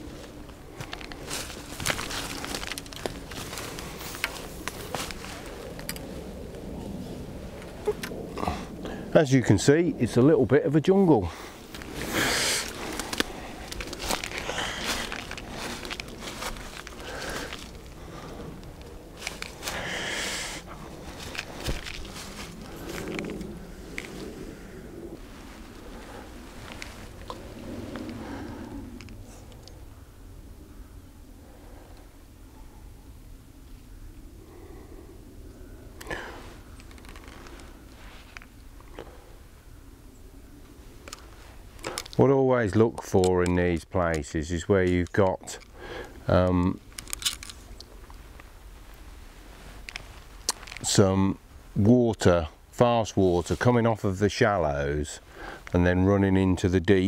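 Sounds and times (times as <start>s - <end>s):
rustling through undergrowth: 0.0s - 8.8s, 10.8s - 30.9s, 35.6s - 56.3s.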